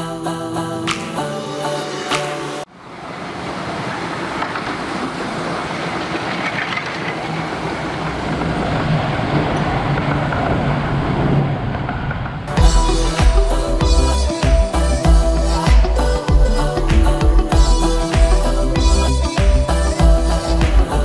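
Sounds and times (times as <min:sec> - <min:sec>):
miniature train running on track: 0:02.9 - 0:12.6.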